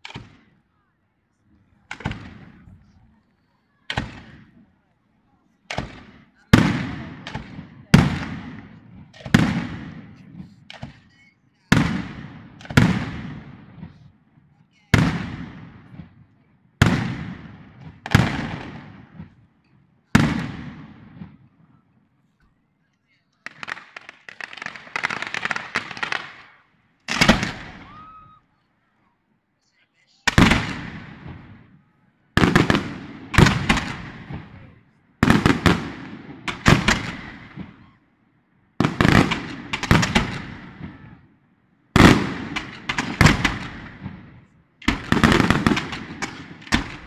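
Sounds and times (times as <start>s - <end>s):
fireworks bangs: 0.0s - 0.9s, 1.5s - 5.0s, 5.6s - 21.8s, 23.1s - 28.5s, 30.2s - 38.0s, 38.7s - 47.0s
fireworks crackling: 0.0s - 21.8s, 22.4s - 28.9s, 29.8s - 38.0s, 38.8s - 41.2s, 41.9s - 47.0s.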